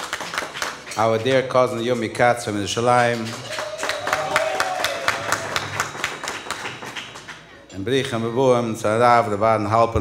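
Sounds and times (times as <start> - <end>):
people clapping: 0.0 - 2.1, 2.8 - 8.2.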